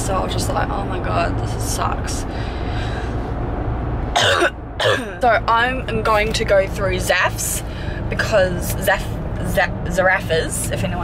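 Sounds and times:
road noise in car: 0.0 - 11.0
woman coughing: 4.2 - 5.2.

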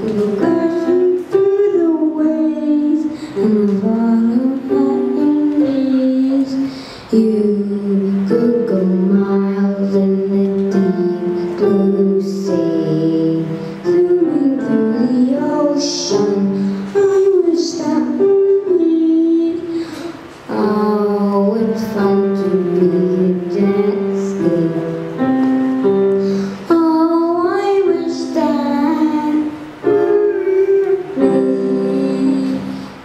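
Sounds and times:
boy singing: 0.0 - 33.0
electric keyboard chords: 0.0 - 33.0.

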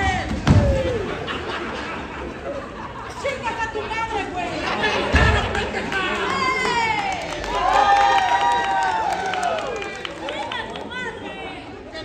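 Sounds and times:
spectators shouting and chattering: 0.0 - 12.0.

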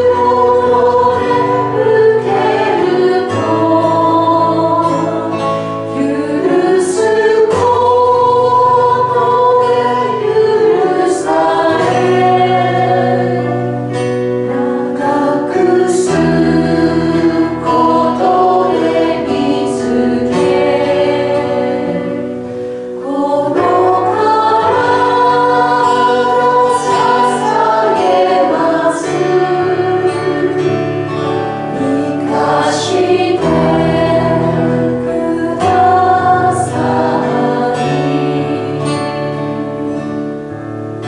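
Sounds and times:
group singing worship song: 0.0 - 40.3
instrumental accompaniment: 0.0 - 41.0.

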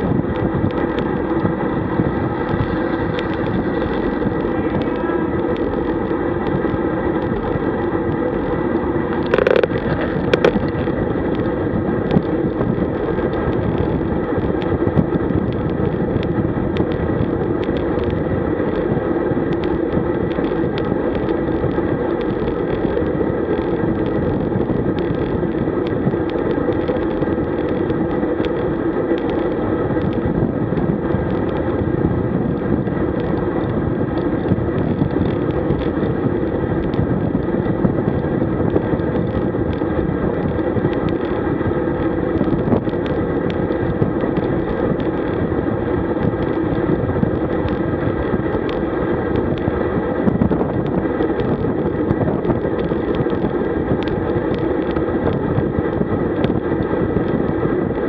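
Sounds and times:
faint ticks and rattles: 0.0 - 58.0
tyre on road noise: 0.0 - 58.0
wind rush: 0.0 - 58.0.

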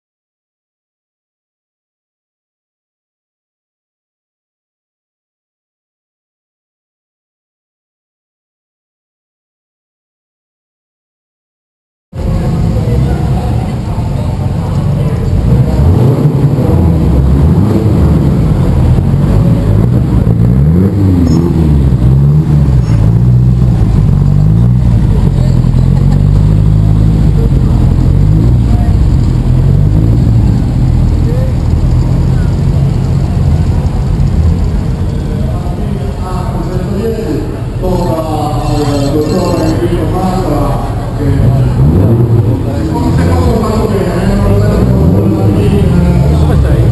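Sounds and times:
crowd voices: 12.2 - 46.9
rally car engines revving: 12.2 - 46.9.

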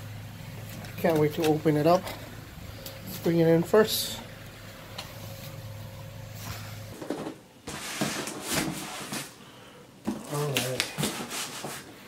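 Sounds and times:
low steady hum: 0.0 - 7.0.

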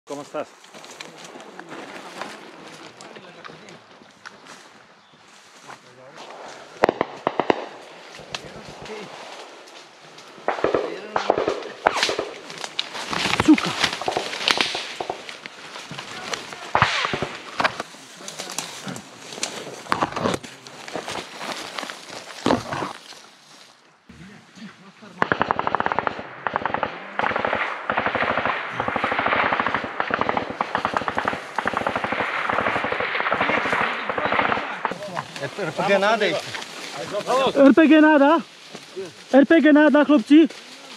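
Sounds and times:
gunfire shots and bursts: 6.3 - 9.5, 10.4 - 15.4, 16.5 - 17.8, 25.2 - 35.1
rapid automatic fire: 6.8 - 7.8, 25.2 - 34.9.

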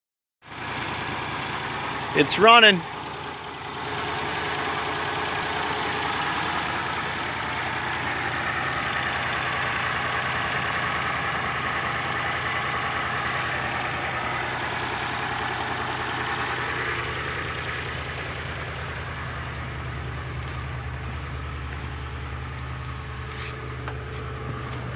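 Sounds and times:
car engine idling: 0.5 - 24.9.

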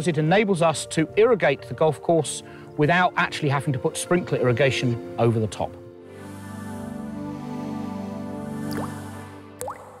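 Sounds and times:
water-drip plink: 8.7 - 9.0, 9.6 - 10.0.

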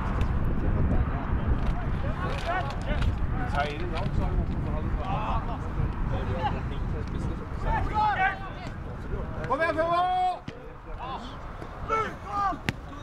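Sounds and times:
steady low rumble: 0.0 - 11.9
players shouting: 7.6 - 13.0.

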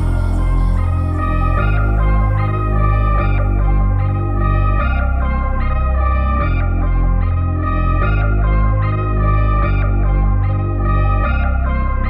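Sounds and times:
sustained bass notes: 0.0 - 12.0.

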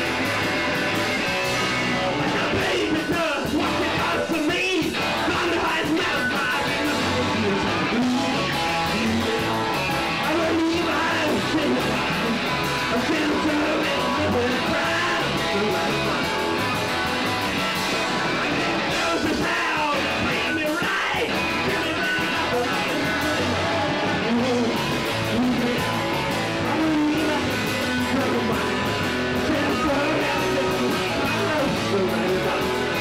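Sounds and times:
electric guitars: 0.0 - 33.0
steady drum beat: 0.0 - 33.0.

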